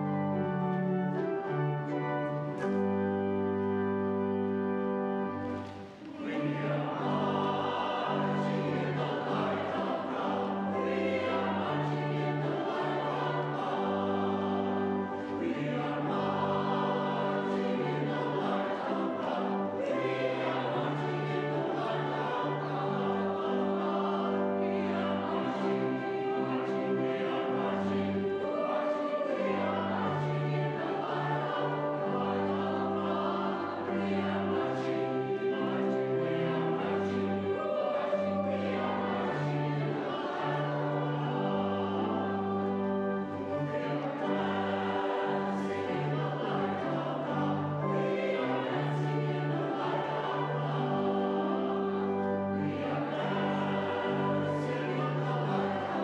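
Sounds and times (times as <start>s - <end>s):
congregation and choir singing hymn: 0.0s - 56.0s
pipe organ chords: 0.0s - 56.0s.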